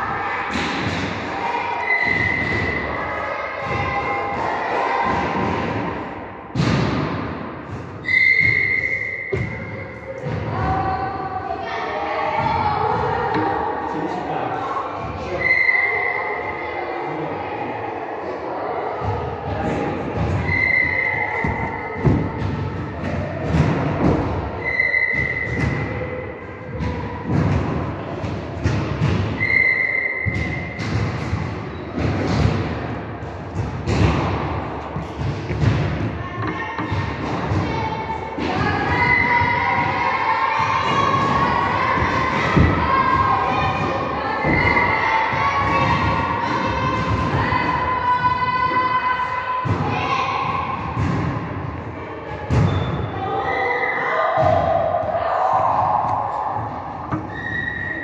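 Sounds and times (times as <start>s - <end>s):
thuds echoing in a hall: 0.0s - 58.0s.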